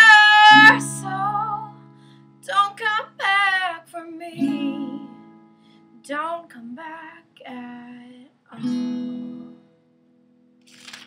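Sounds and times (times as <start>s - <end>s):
woman singing: 0.0s - 1.8s, 2.4s - 5.3s, 6.0s - 8.8s
acoustic guitar chord: 0.5s - 2.4s.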